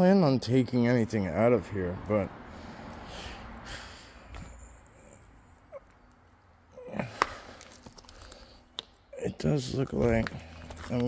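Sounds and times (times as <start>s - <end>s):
handling noise among rocks: 9.9s - 11.0s.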